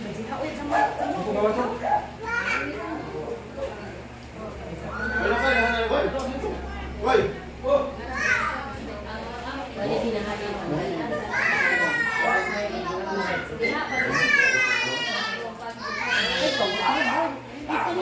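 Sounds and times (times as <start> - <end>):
crowd talking: 0.0 - 18.0
children crying out: 4.8 - 6.0, 8.0 - 8.7, 11.1 - 17.4.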